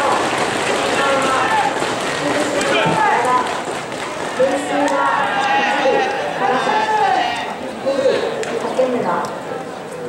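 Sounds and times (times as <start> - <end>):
voices calling out: 0.0 - 8.8.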